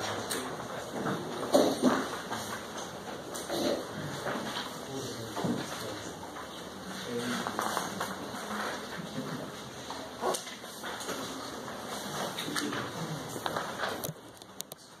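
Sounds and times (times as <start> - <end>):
faint indistinct voices: 0.0 - 15.0
clicks and rustles: 4.1 - 15.0.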